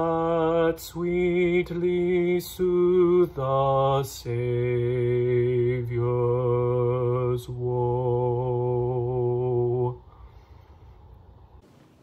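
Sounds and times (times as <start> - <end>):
a cappella hymn singing: 0.0 - 10.0.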